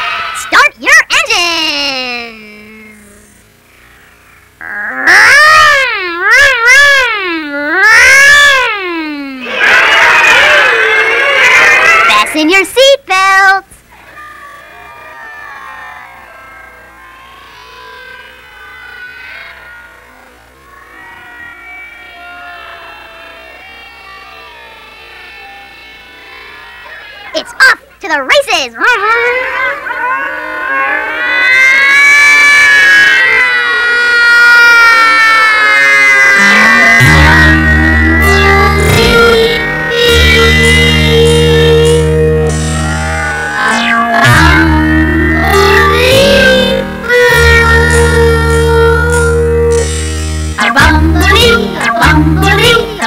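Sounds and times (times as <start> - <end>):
children imitating vehicle sounds: 0.0 - 50.0.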